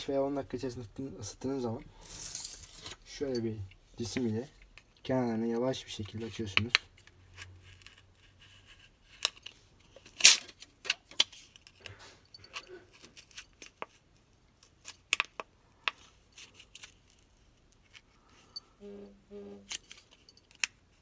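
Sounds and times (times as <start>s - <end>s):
metal tool scraping plastic: 5.9s - 21.0s.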